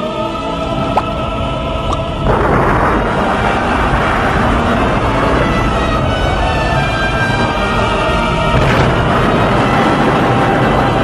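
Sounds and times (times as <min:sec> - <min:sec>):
faint orchestral score: 0:00.0 - 0:11.0
rushing rumble of eruption: 0:00.5 - 0:11.0.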